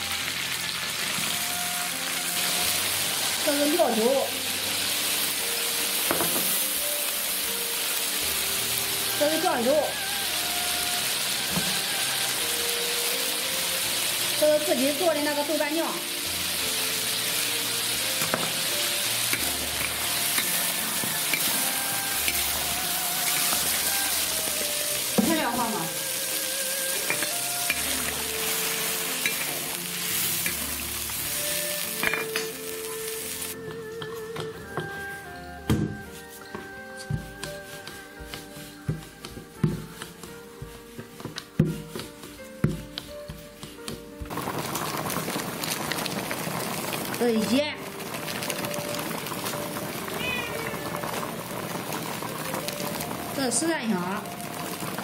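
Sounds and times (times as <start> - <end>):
meat sizzling in a wok: 0.0 - 55.0.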